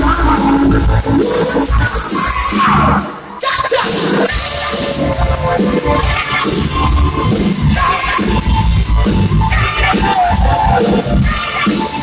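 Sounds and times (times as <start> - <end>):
live band playing loud music: 0.0 - 12.0.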